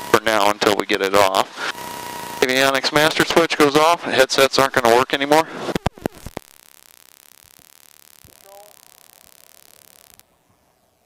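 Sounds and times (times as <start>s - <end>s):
faint electronic hiss: 4.8s - 11.0s.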